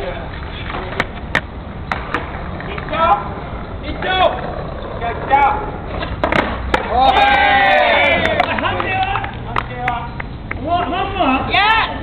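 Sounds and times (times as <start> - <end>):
skateboard rolling: 0.0 - 9.8
skateboard wooden clacks: 0.4 - 3.2, 5.9 - 7.4.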